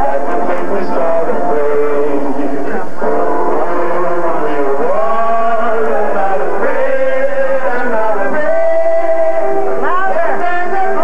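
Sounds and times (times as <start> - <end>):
jazz vocal singing: 0.0 - 11.0.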